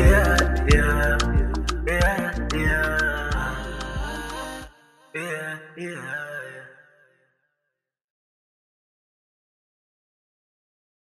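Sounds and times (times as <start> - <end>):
man singing: 0.0 - 7.1.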